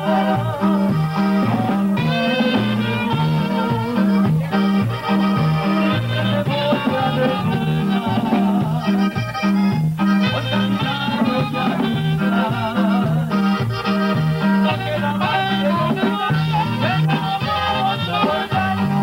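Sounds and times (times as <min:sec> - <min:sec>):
live band music: 0:00.0 - 0:19.0.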